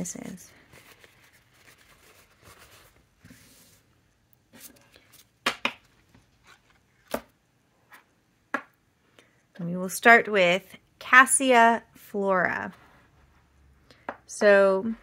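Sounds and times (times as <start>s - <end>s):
paper towel rustling: 0.6s - 5.4s.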